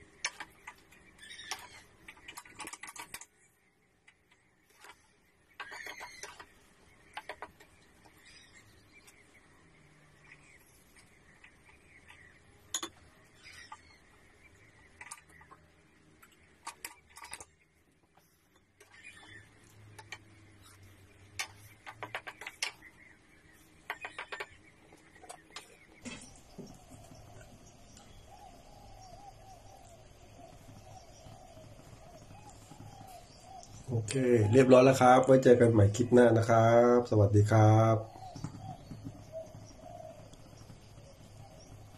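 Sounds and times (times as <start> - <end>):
faint bird calling: 18.2 - 35.2, 36.0 - 41.9.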